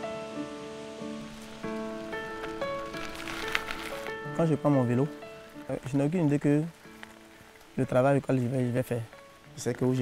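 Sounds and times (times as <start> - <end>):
rustling hiss: 0.0 - 10.0.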